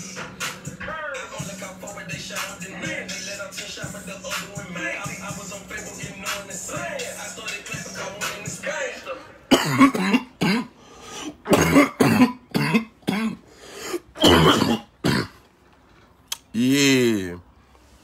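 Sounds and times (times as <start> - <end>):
man coughing hard: 9.5 - 10.8, 11.4 - 15.4.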